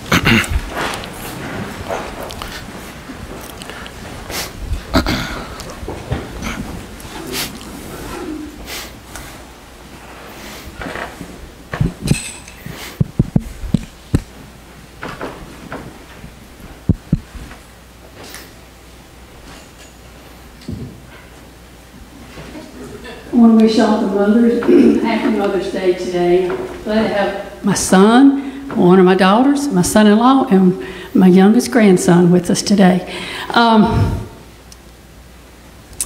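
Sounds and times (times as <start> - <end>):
microphone handling noise: 0.0 - 8.7, 10.7 - 17.7, 33.8 - 34.4
rustling and shuffling: 0.0 - 27.3
low steady hum: 0.0 - 36.0
dull thumps: 16.8 - 17.6.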